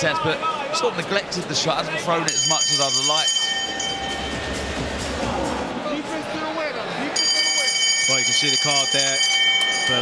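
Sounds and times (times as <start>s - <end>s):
voices in arena: 0.0s - 10.0s
boxing ring bell: 2.3s - 4.6s, 7.2s - 10.0s.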